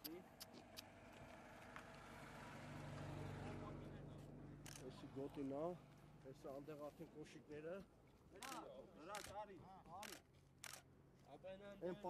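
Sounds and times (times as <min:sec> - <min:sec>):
car driving past: 0:00.6 - 0:05.0.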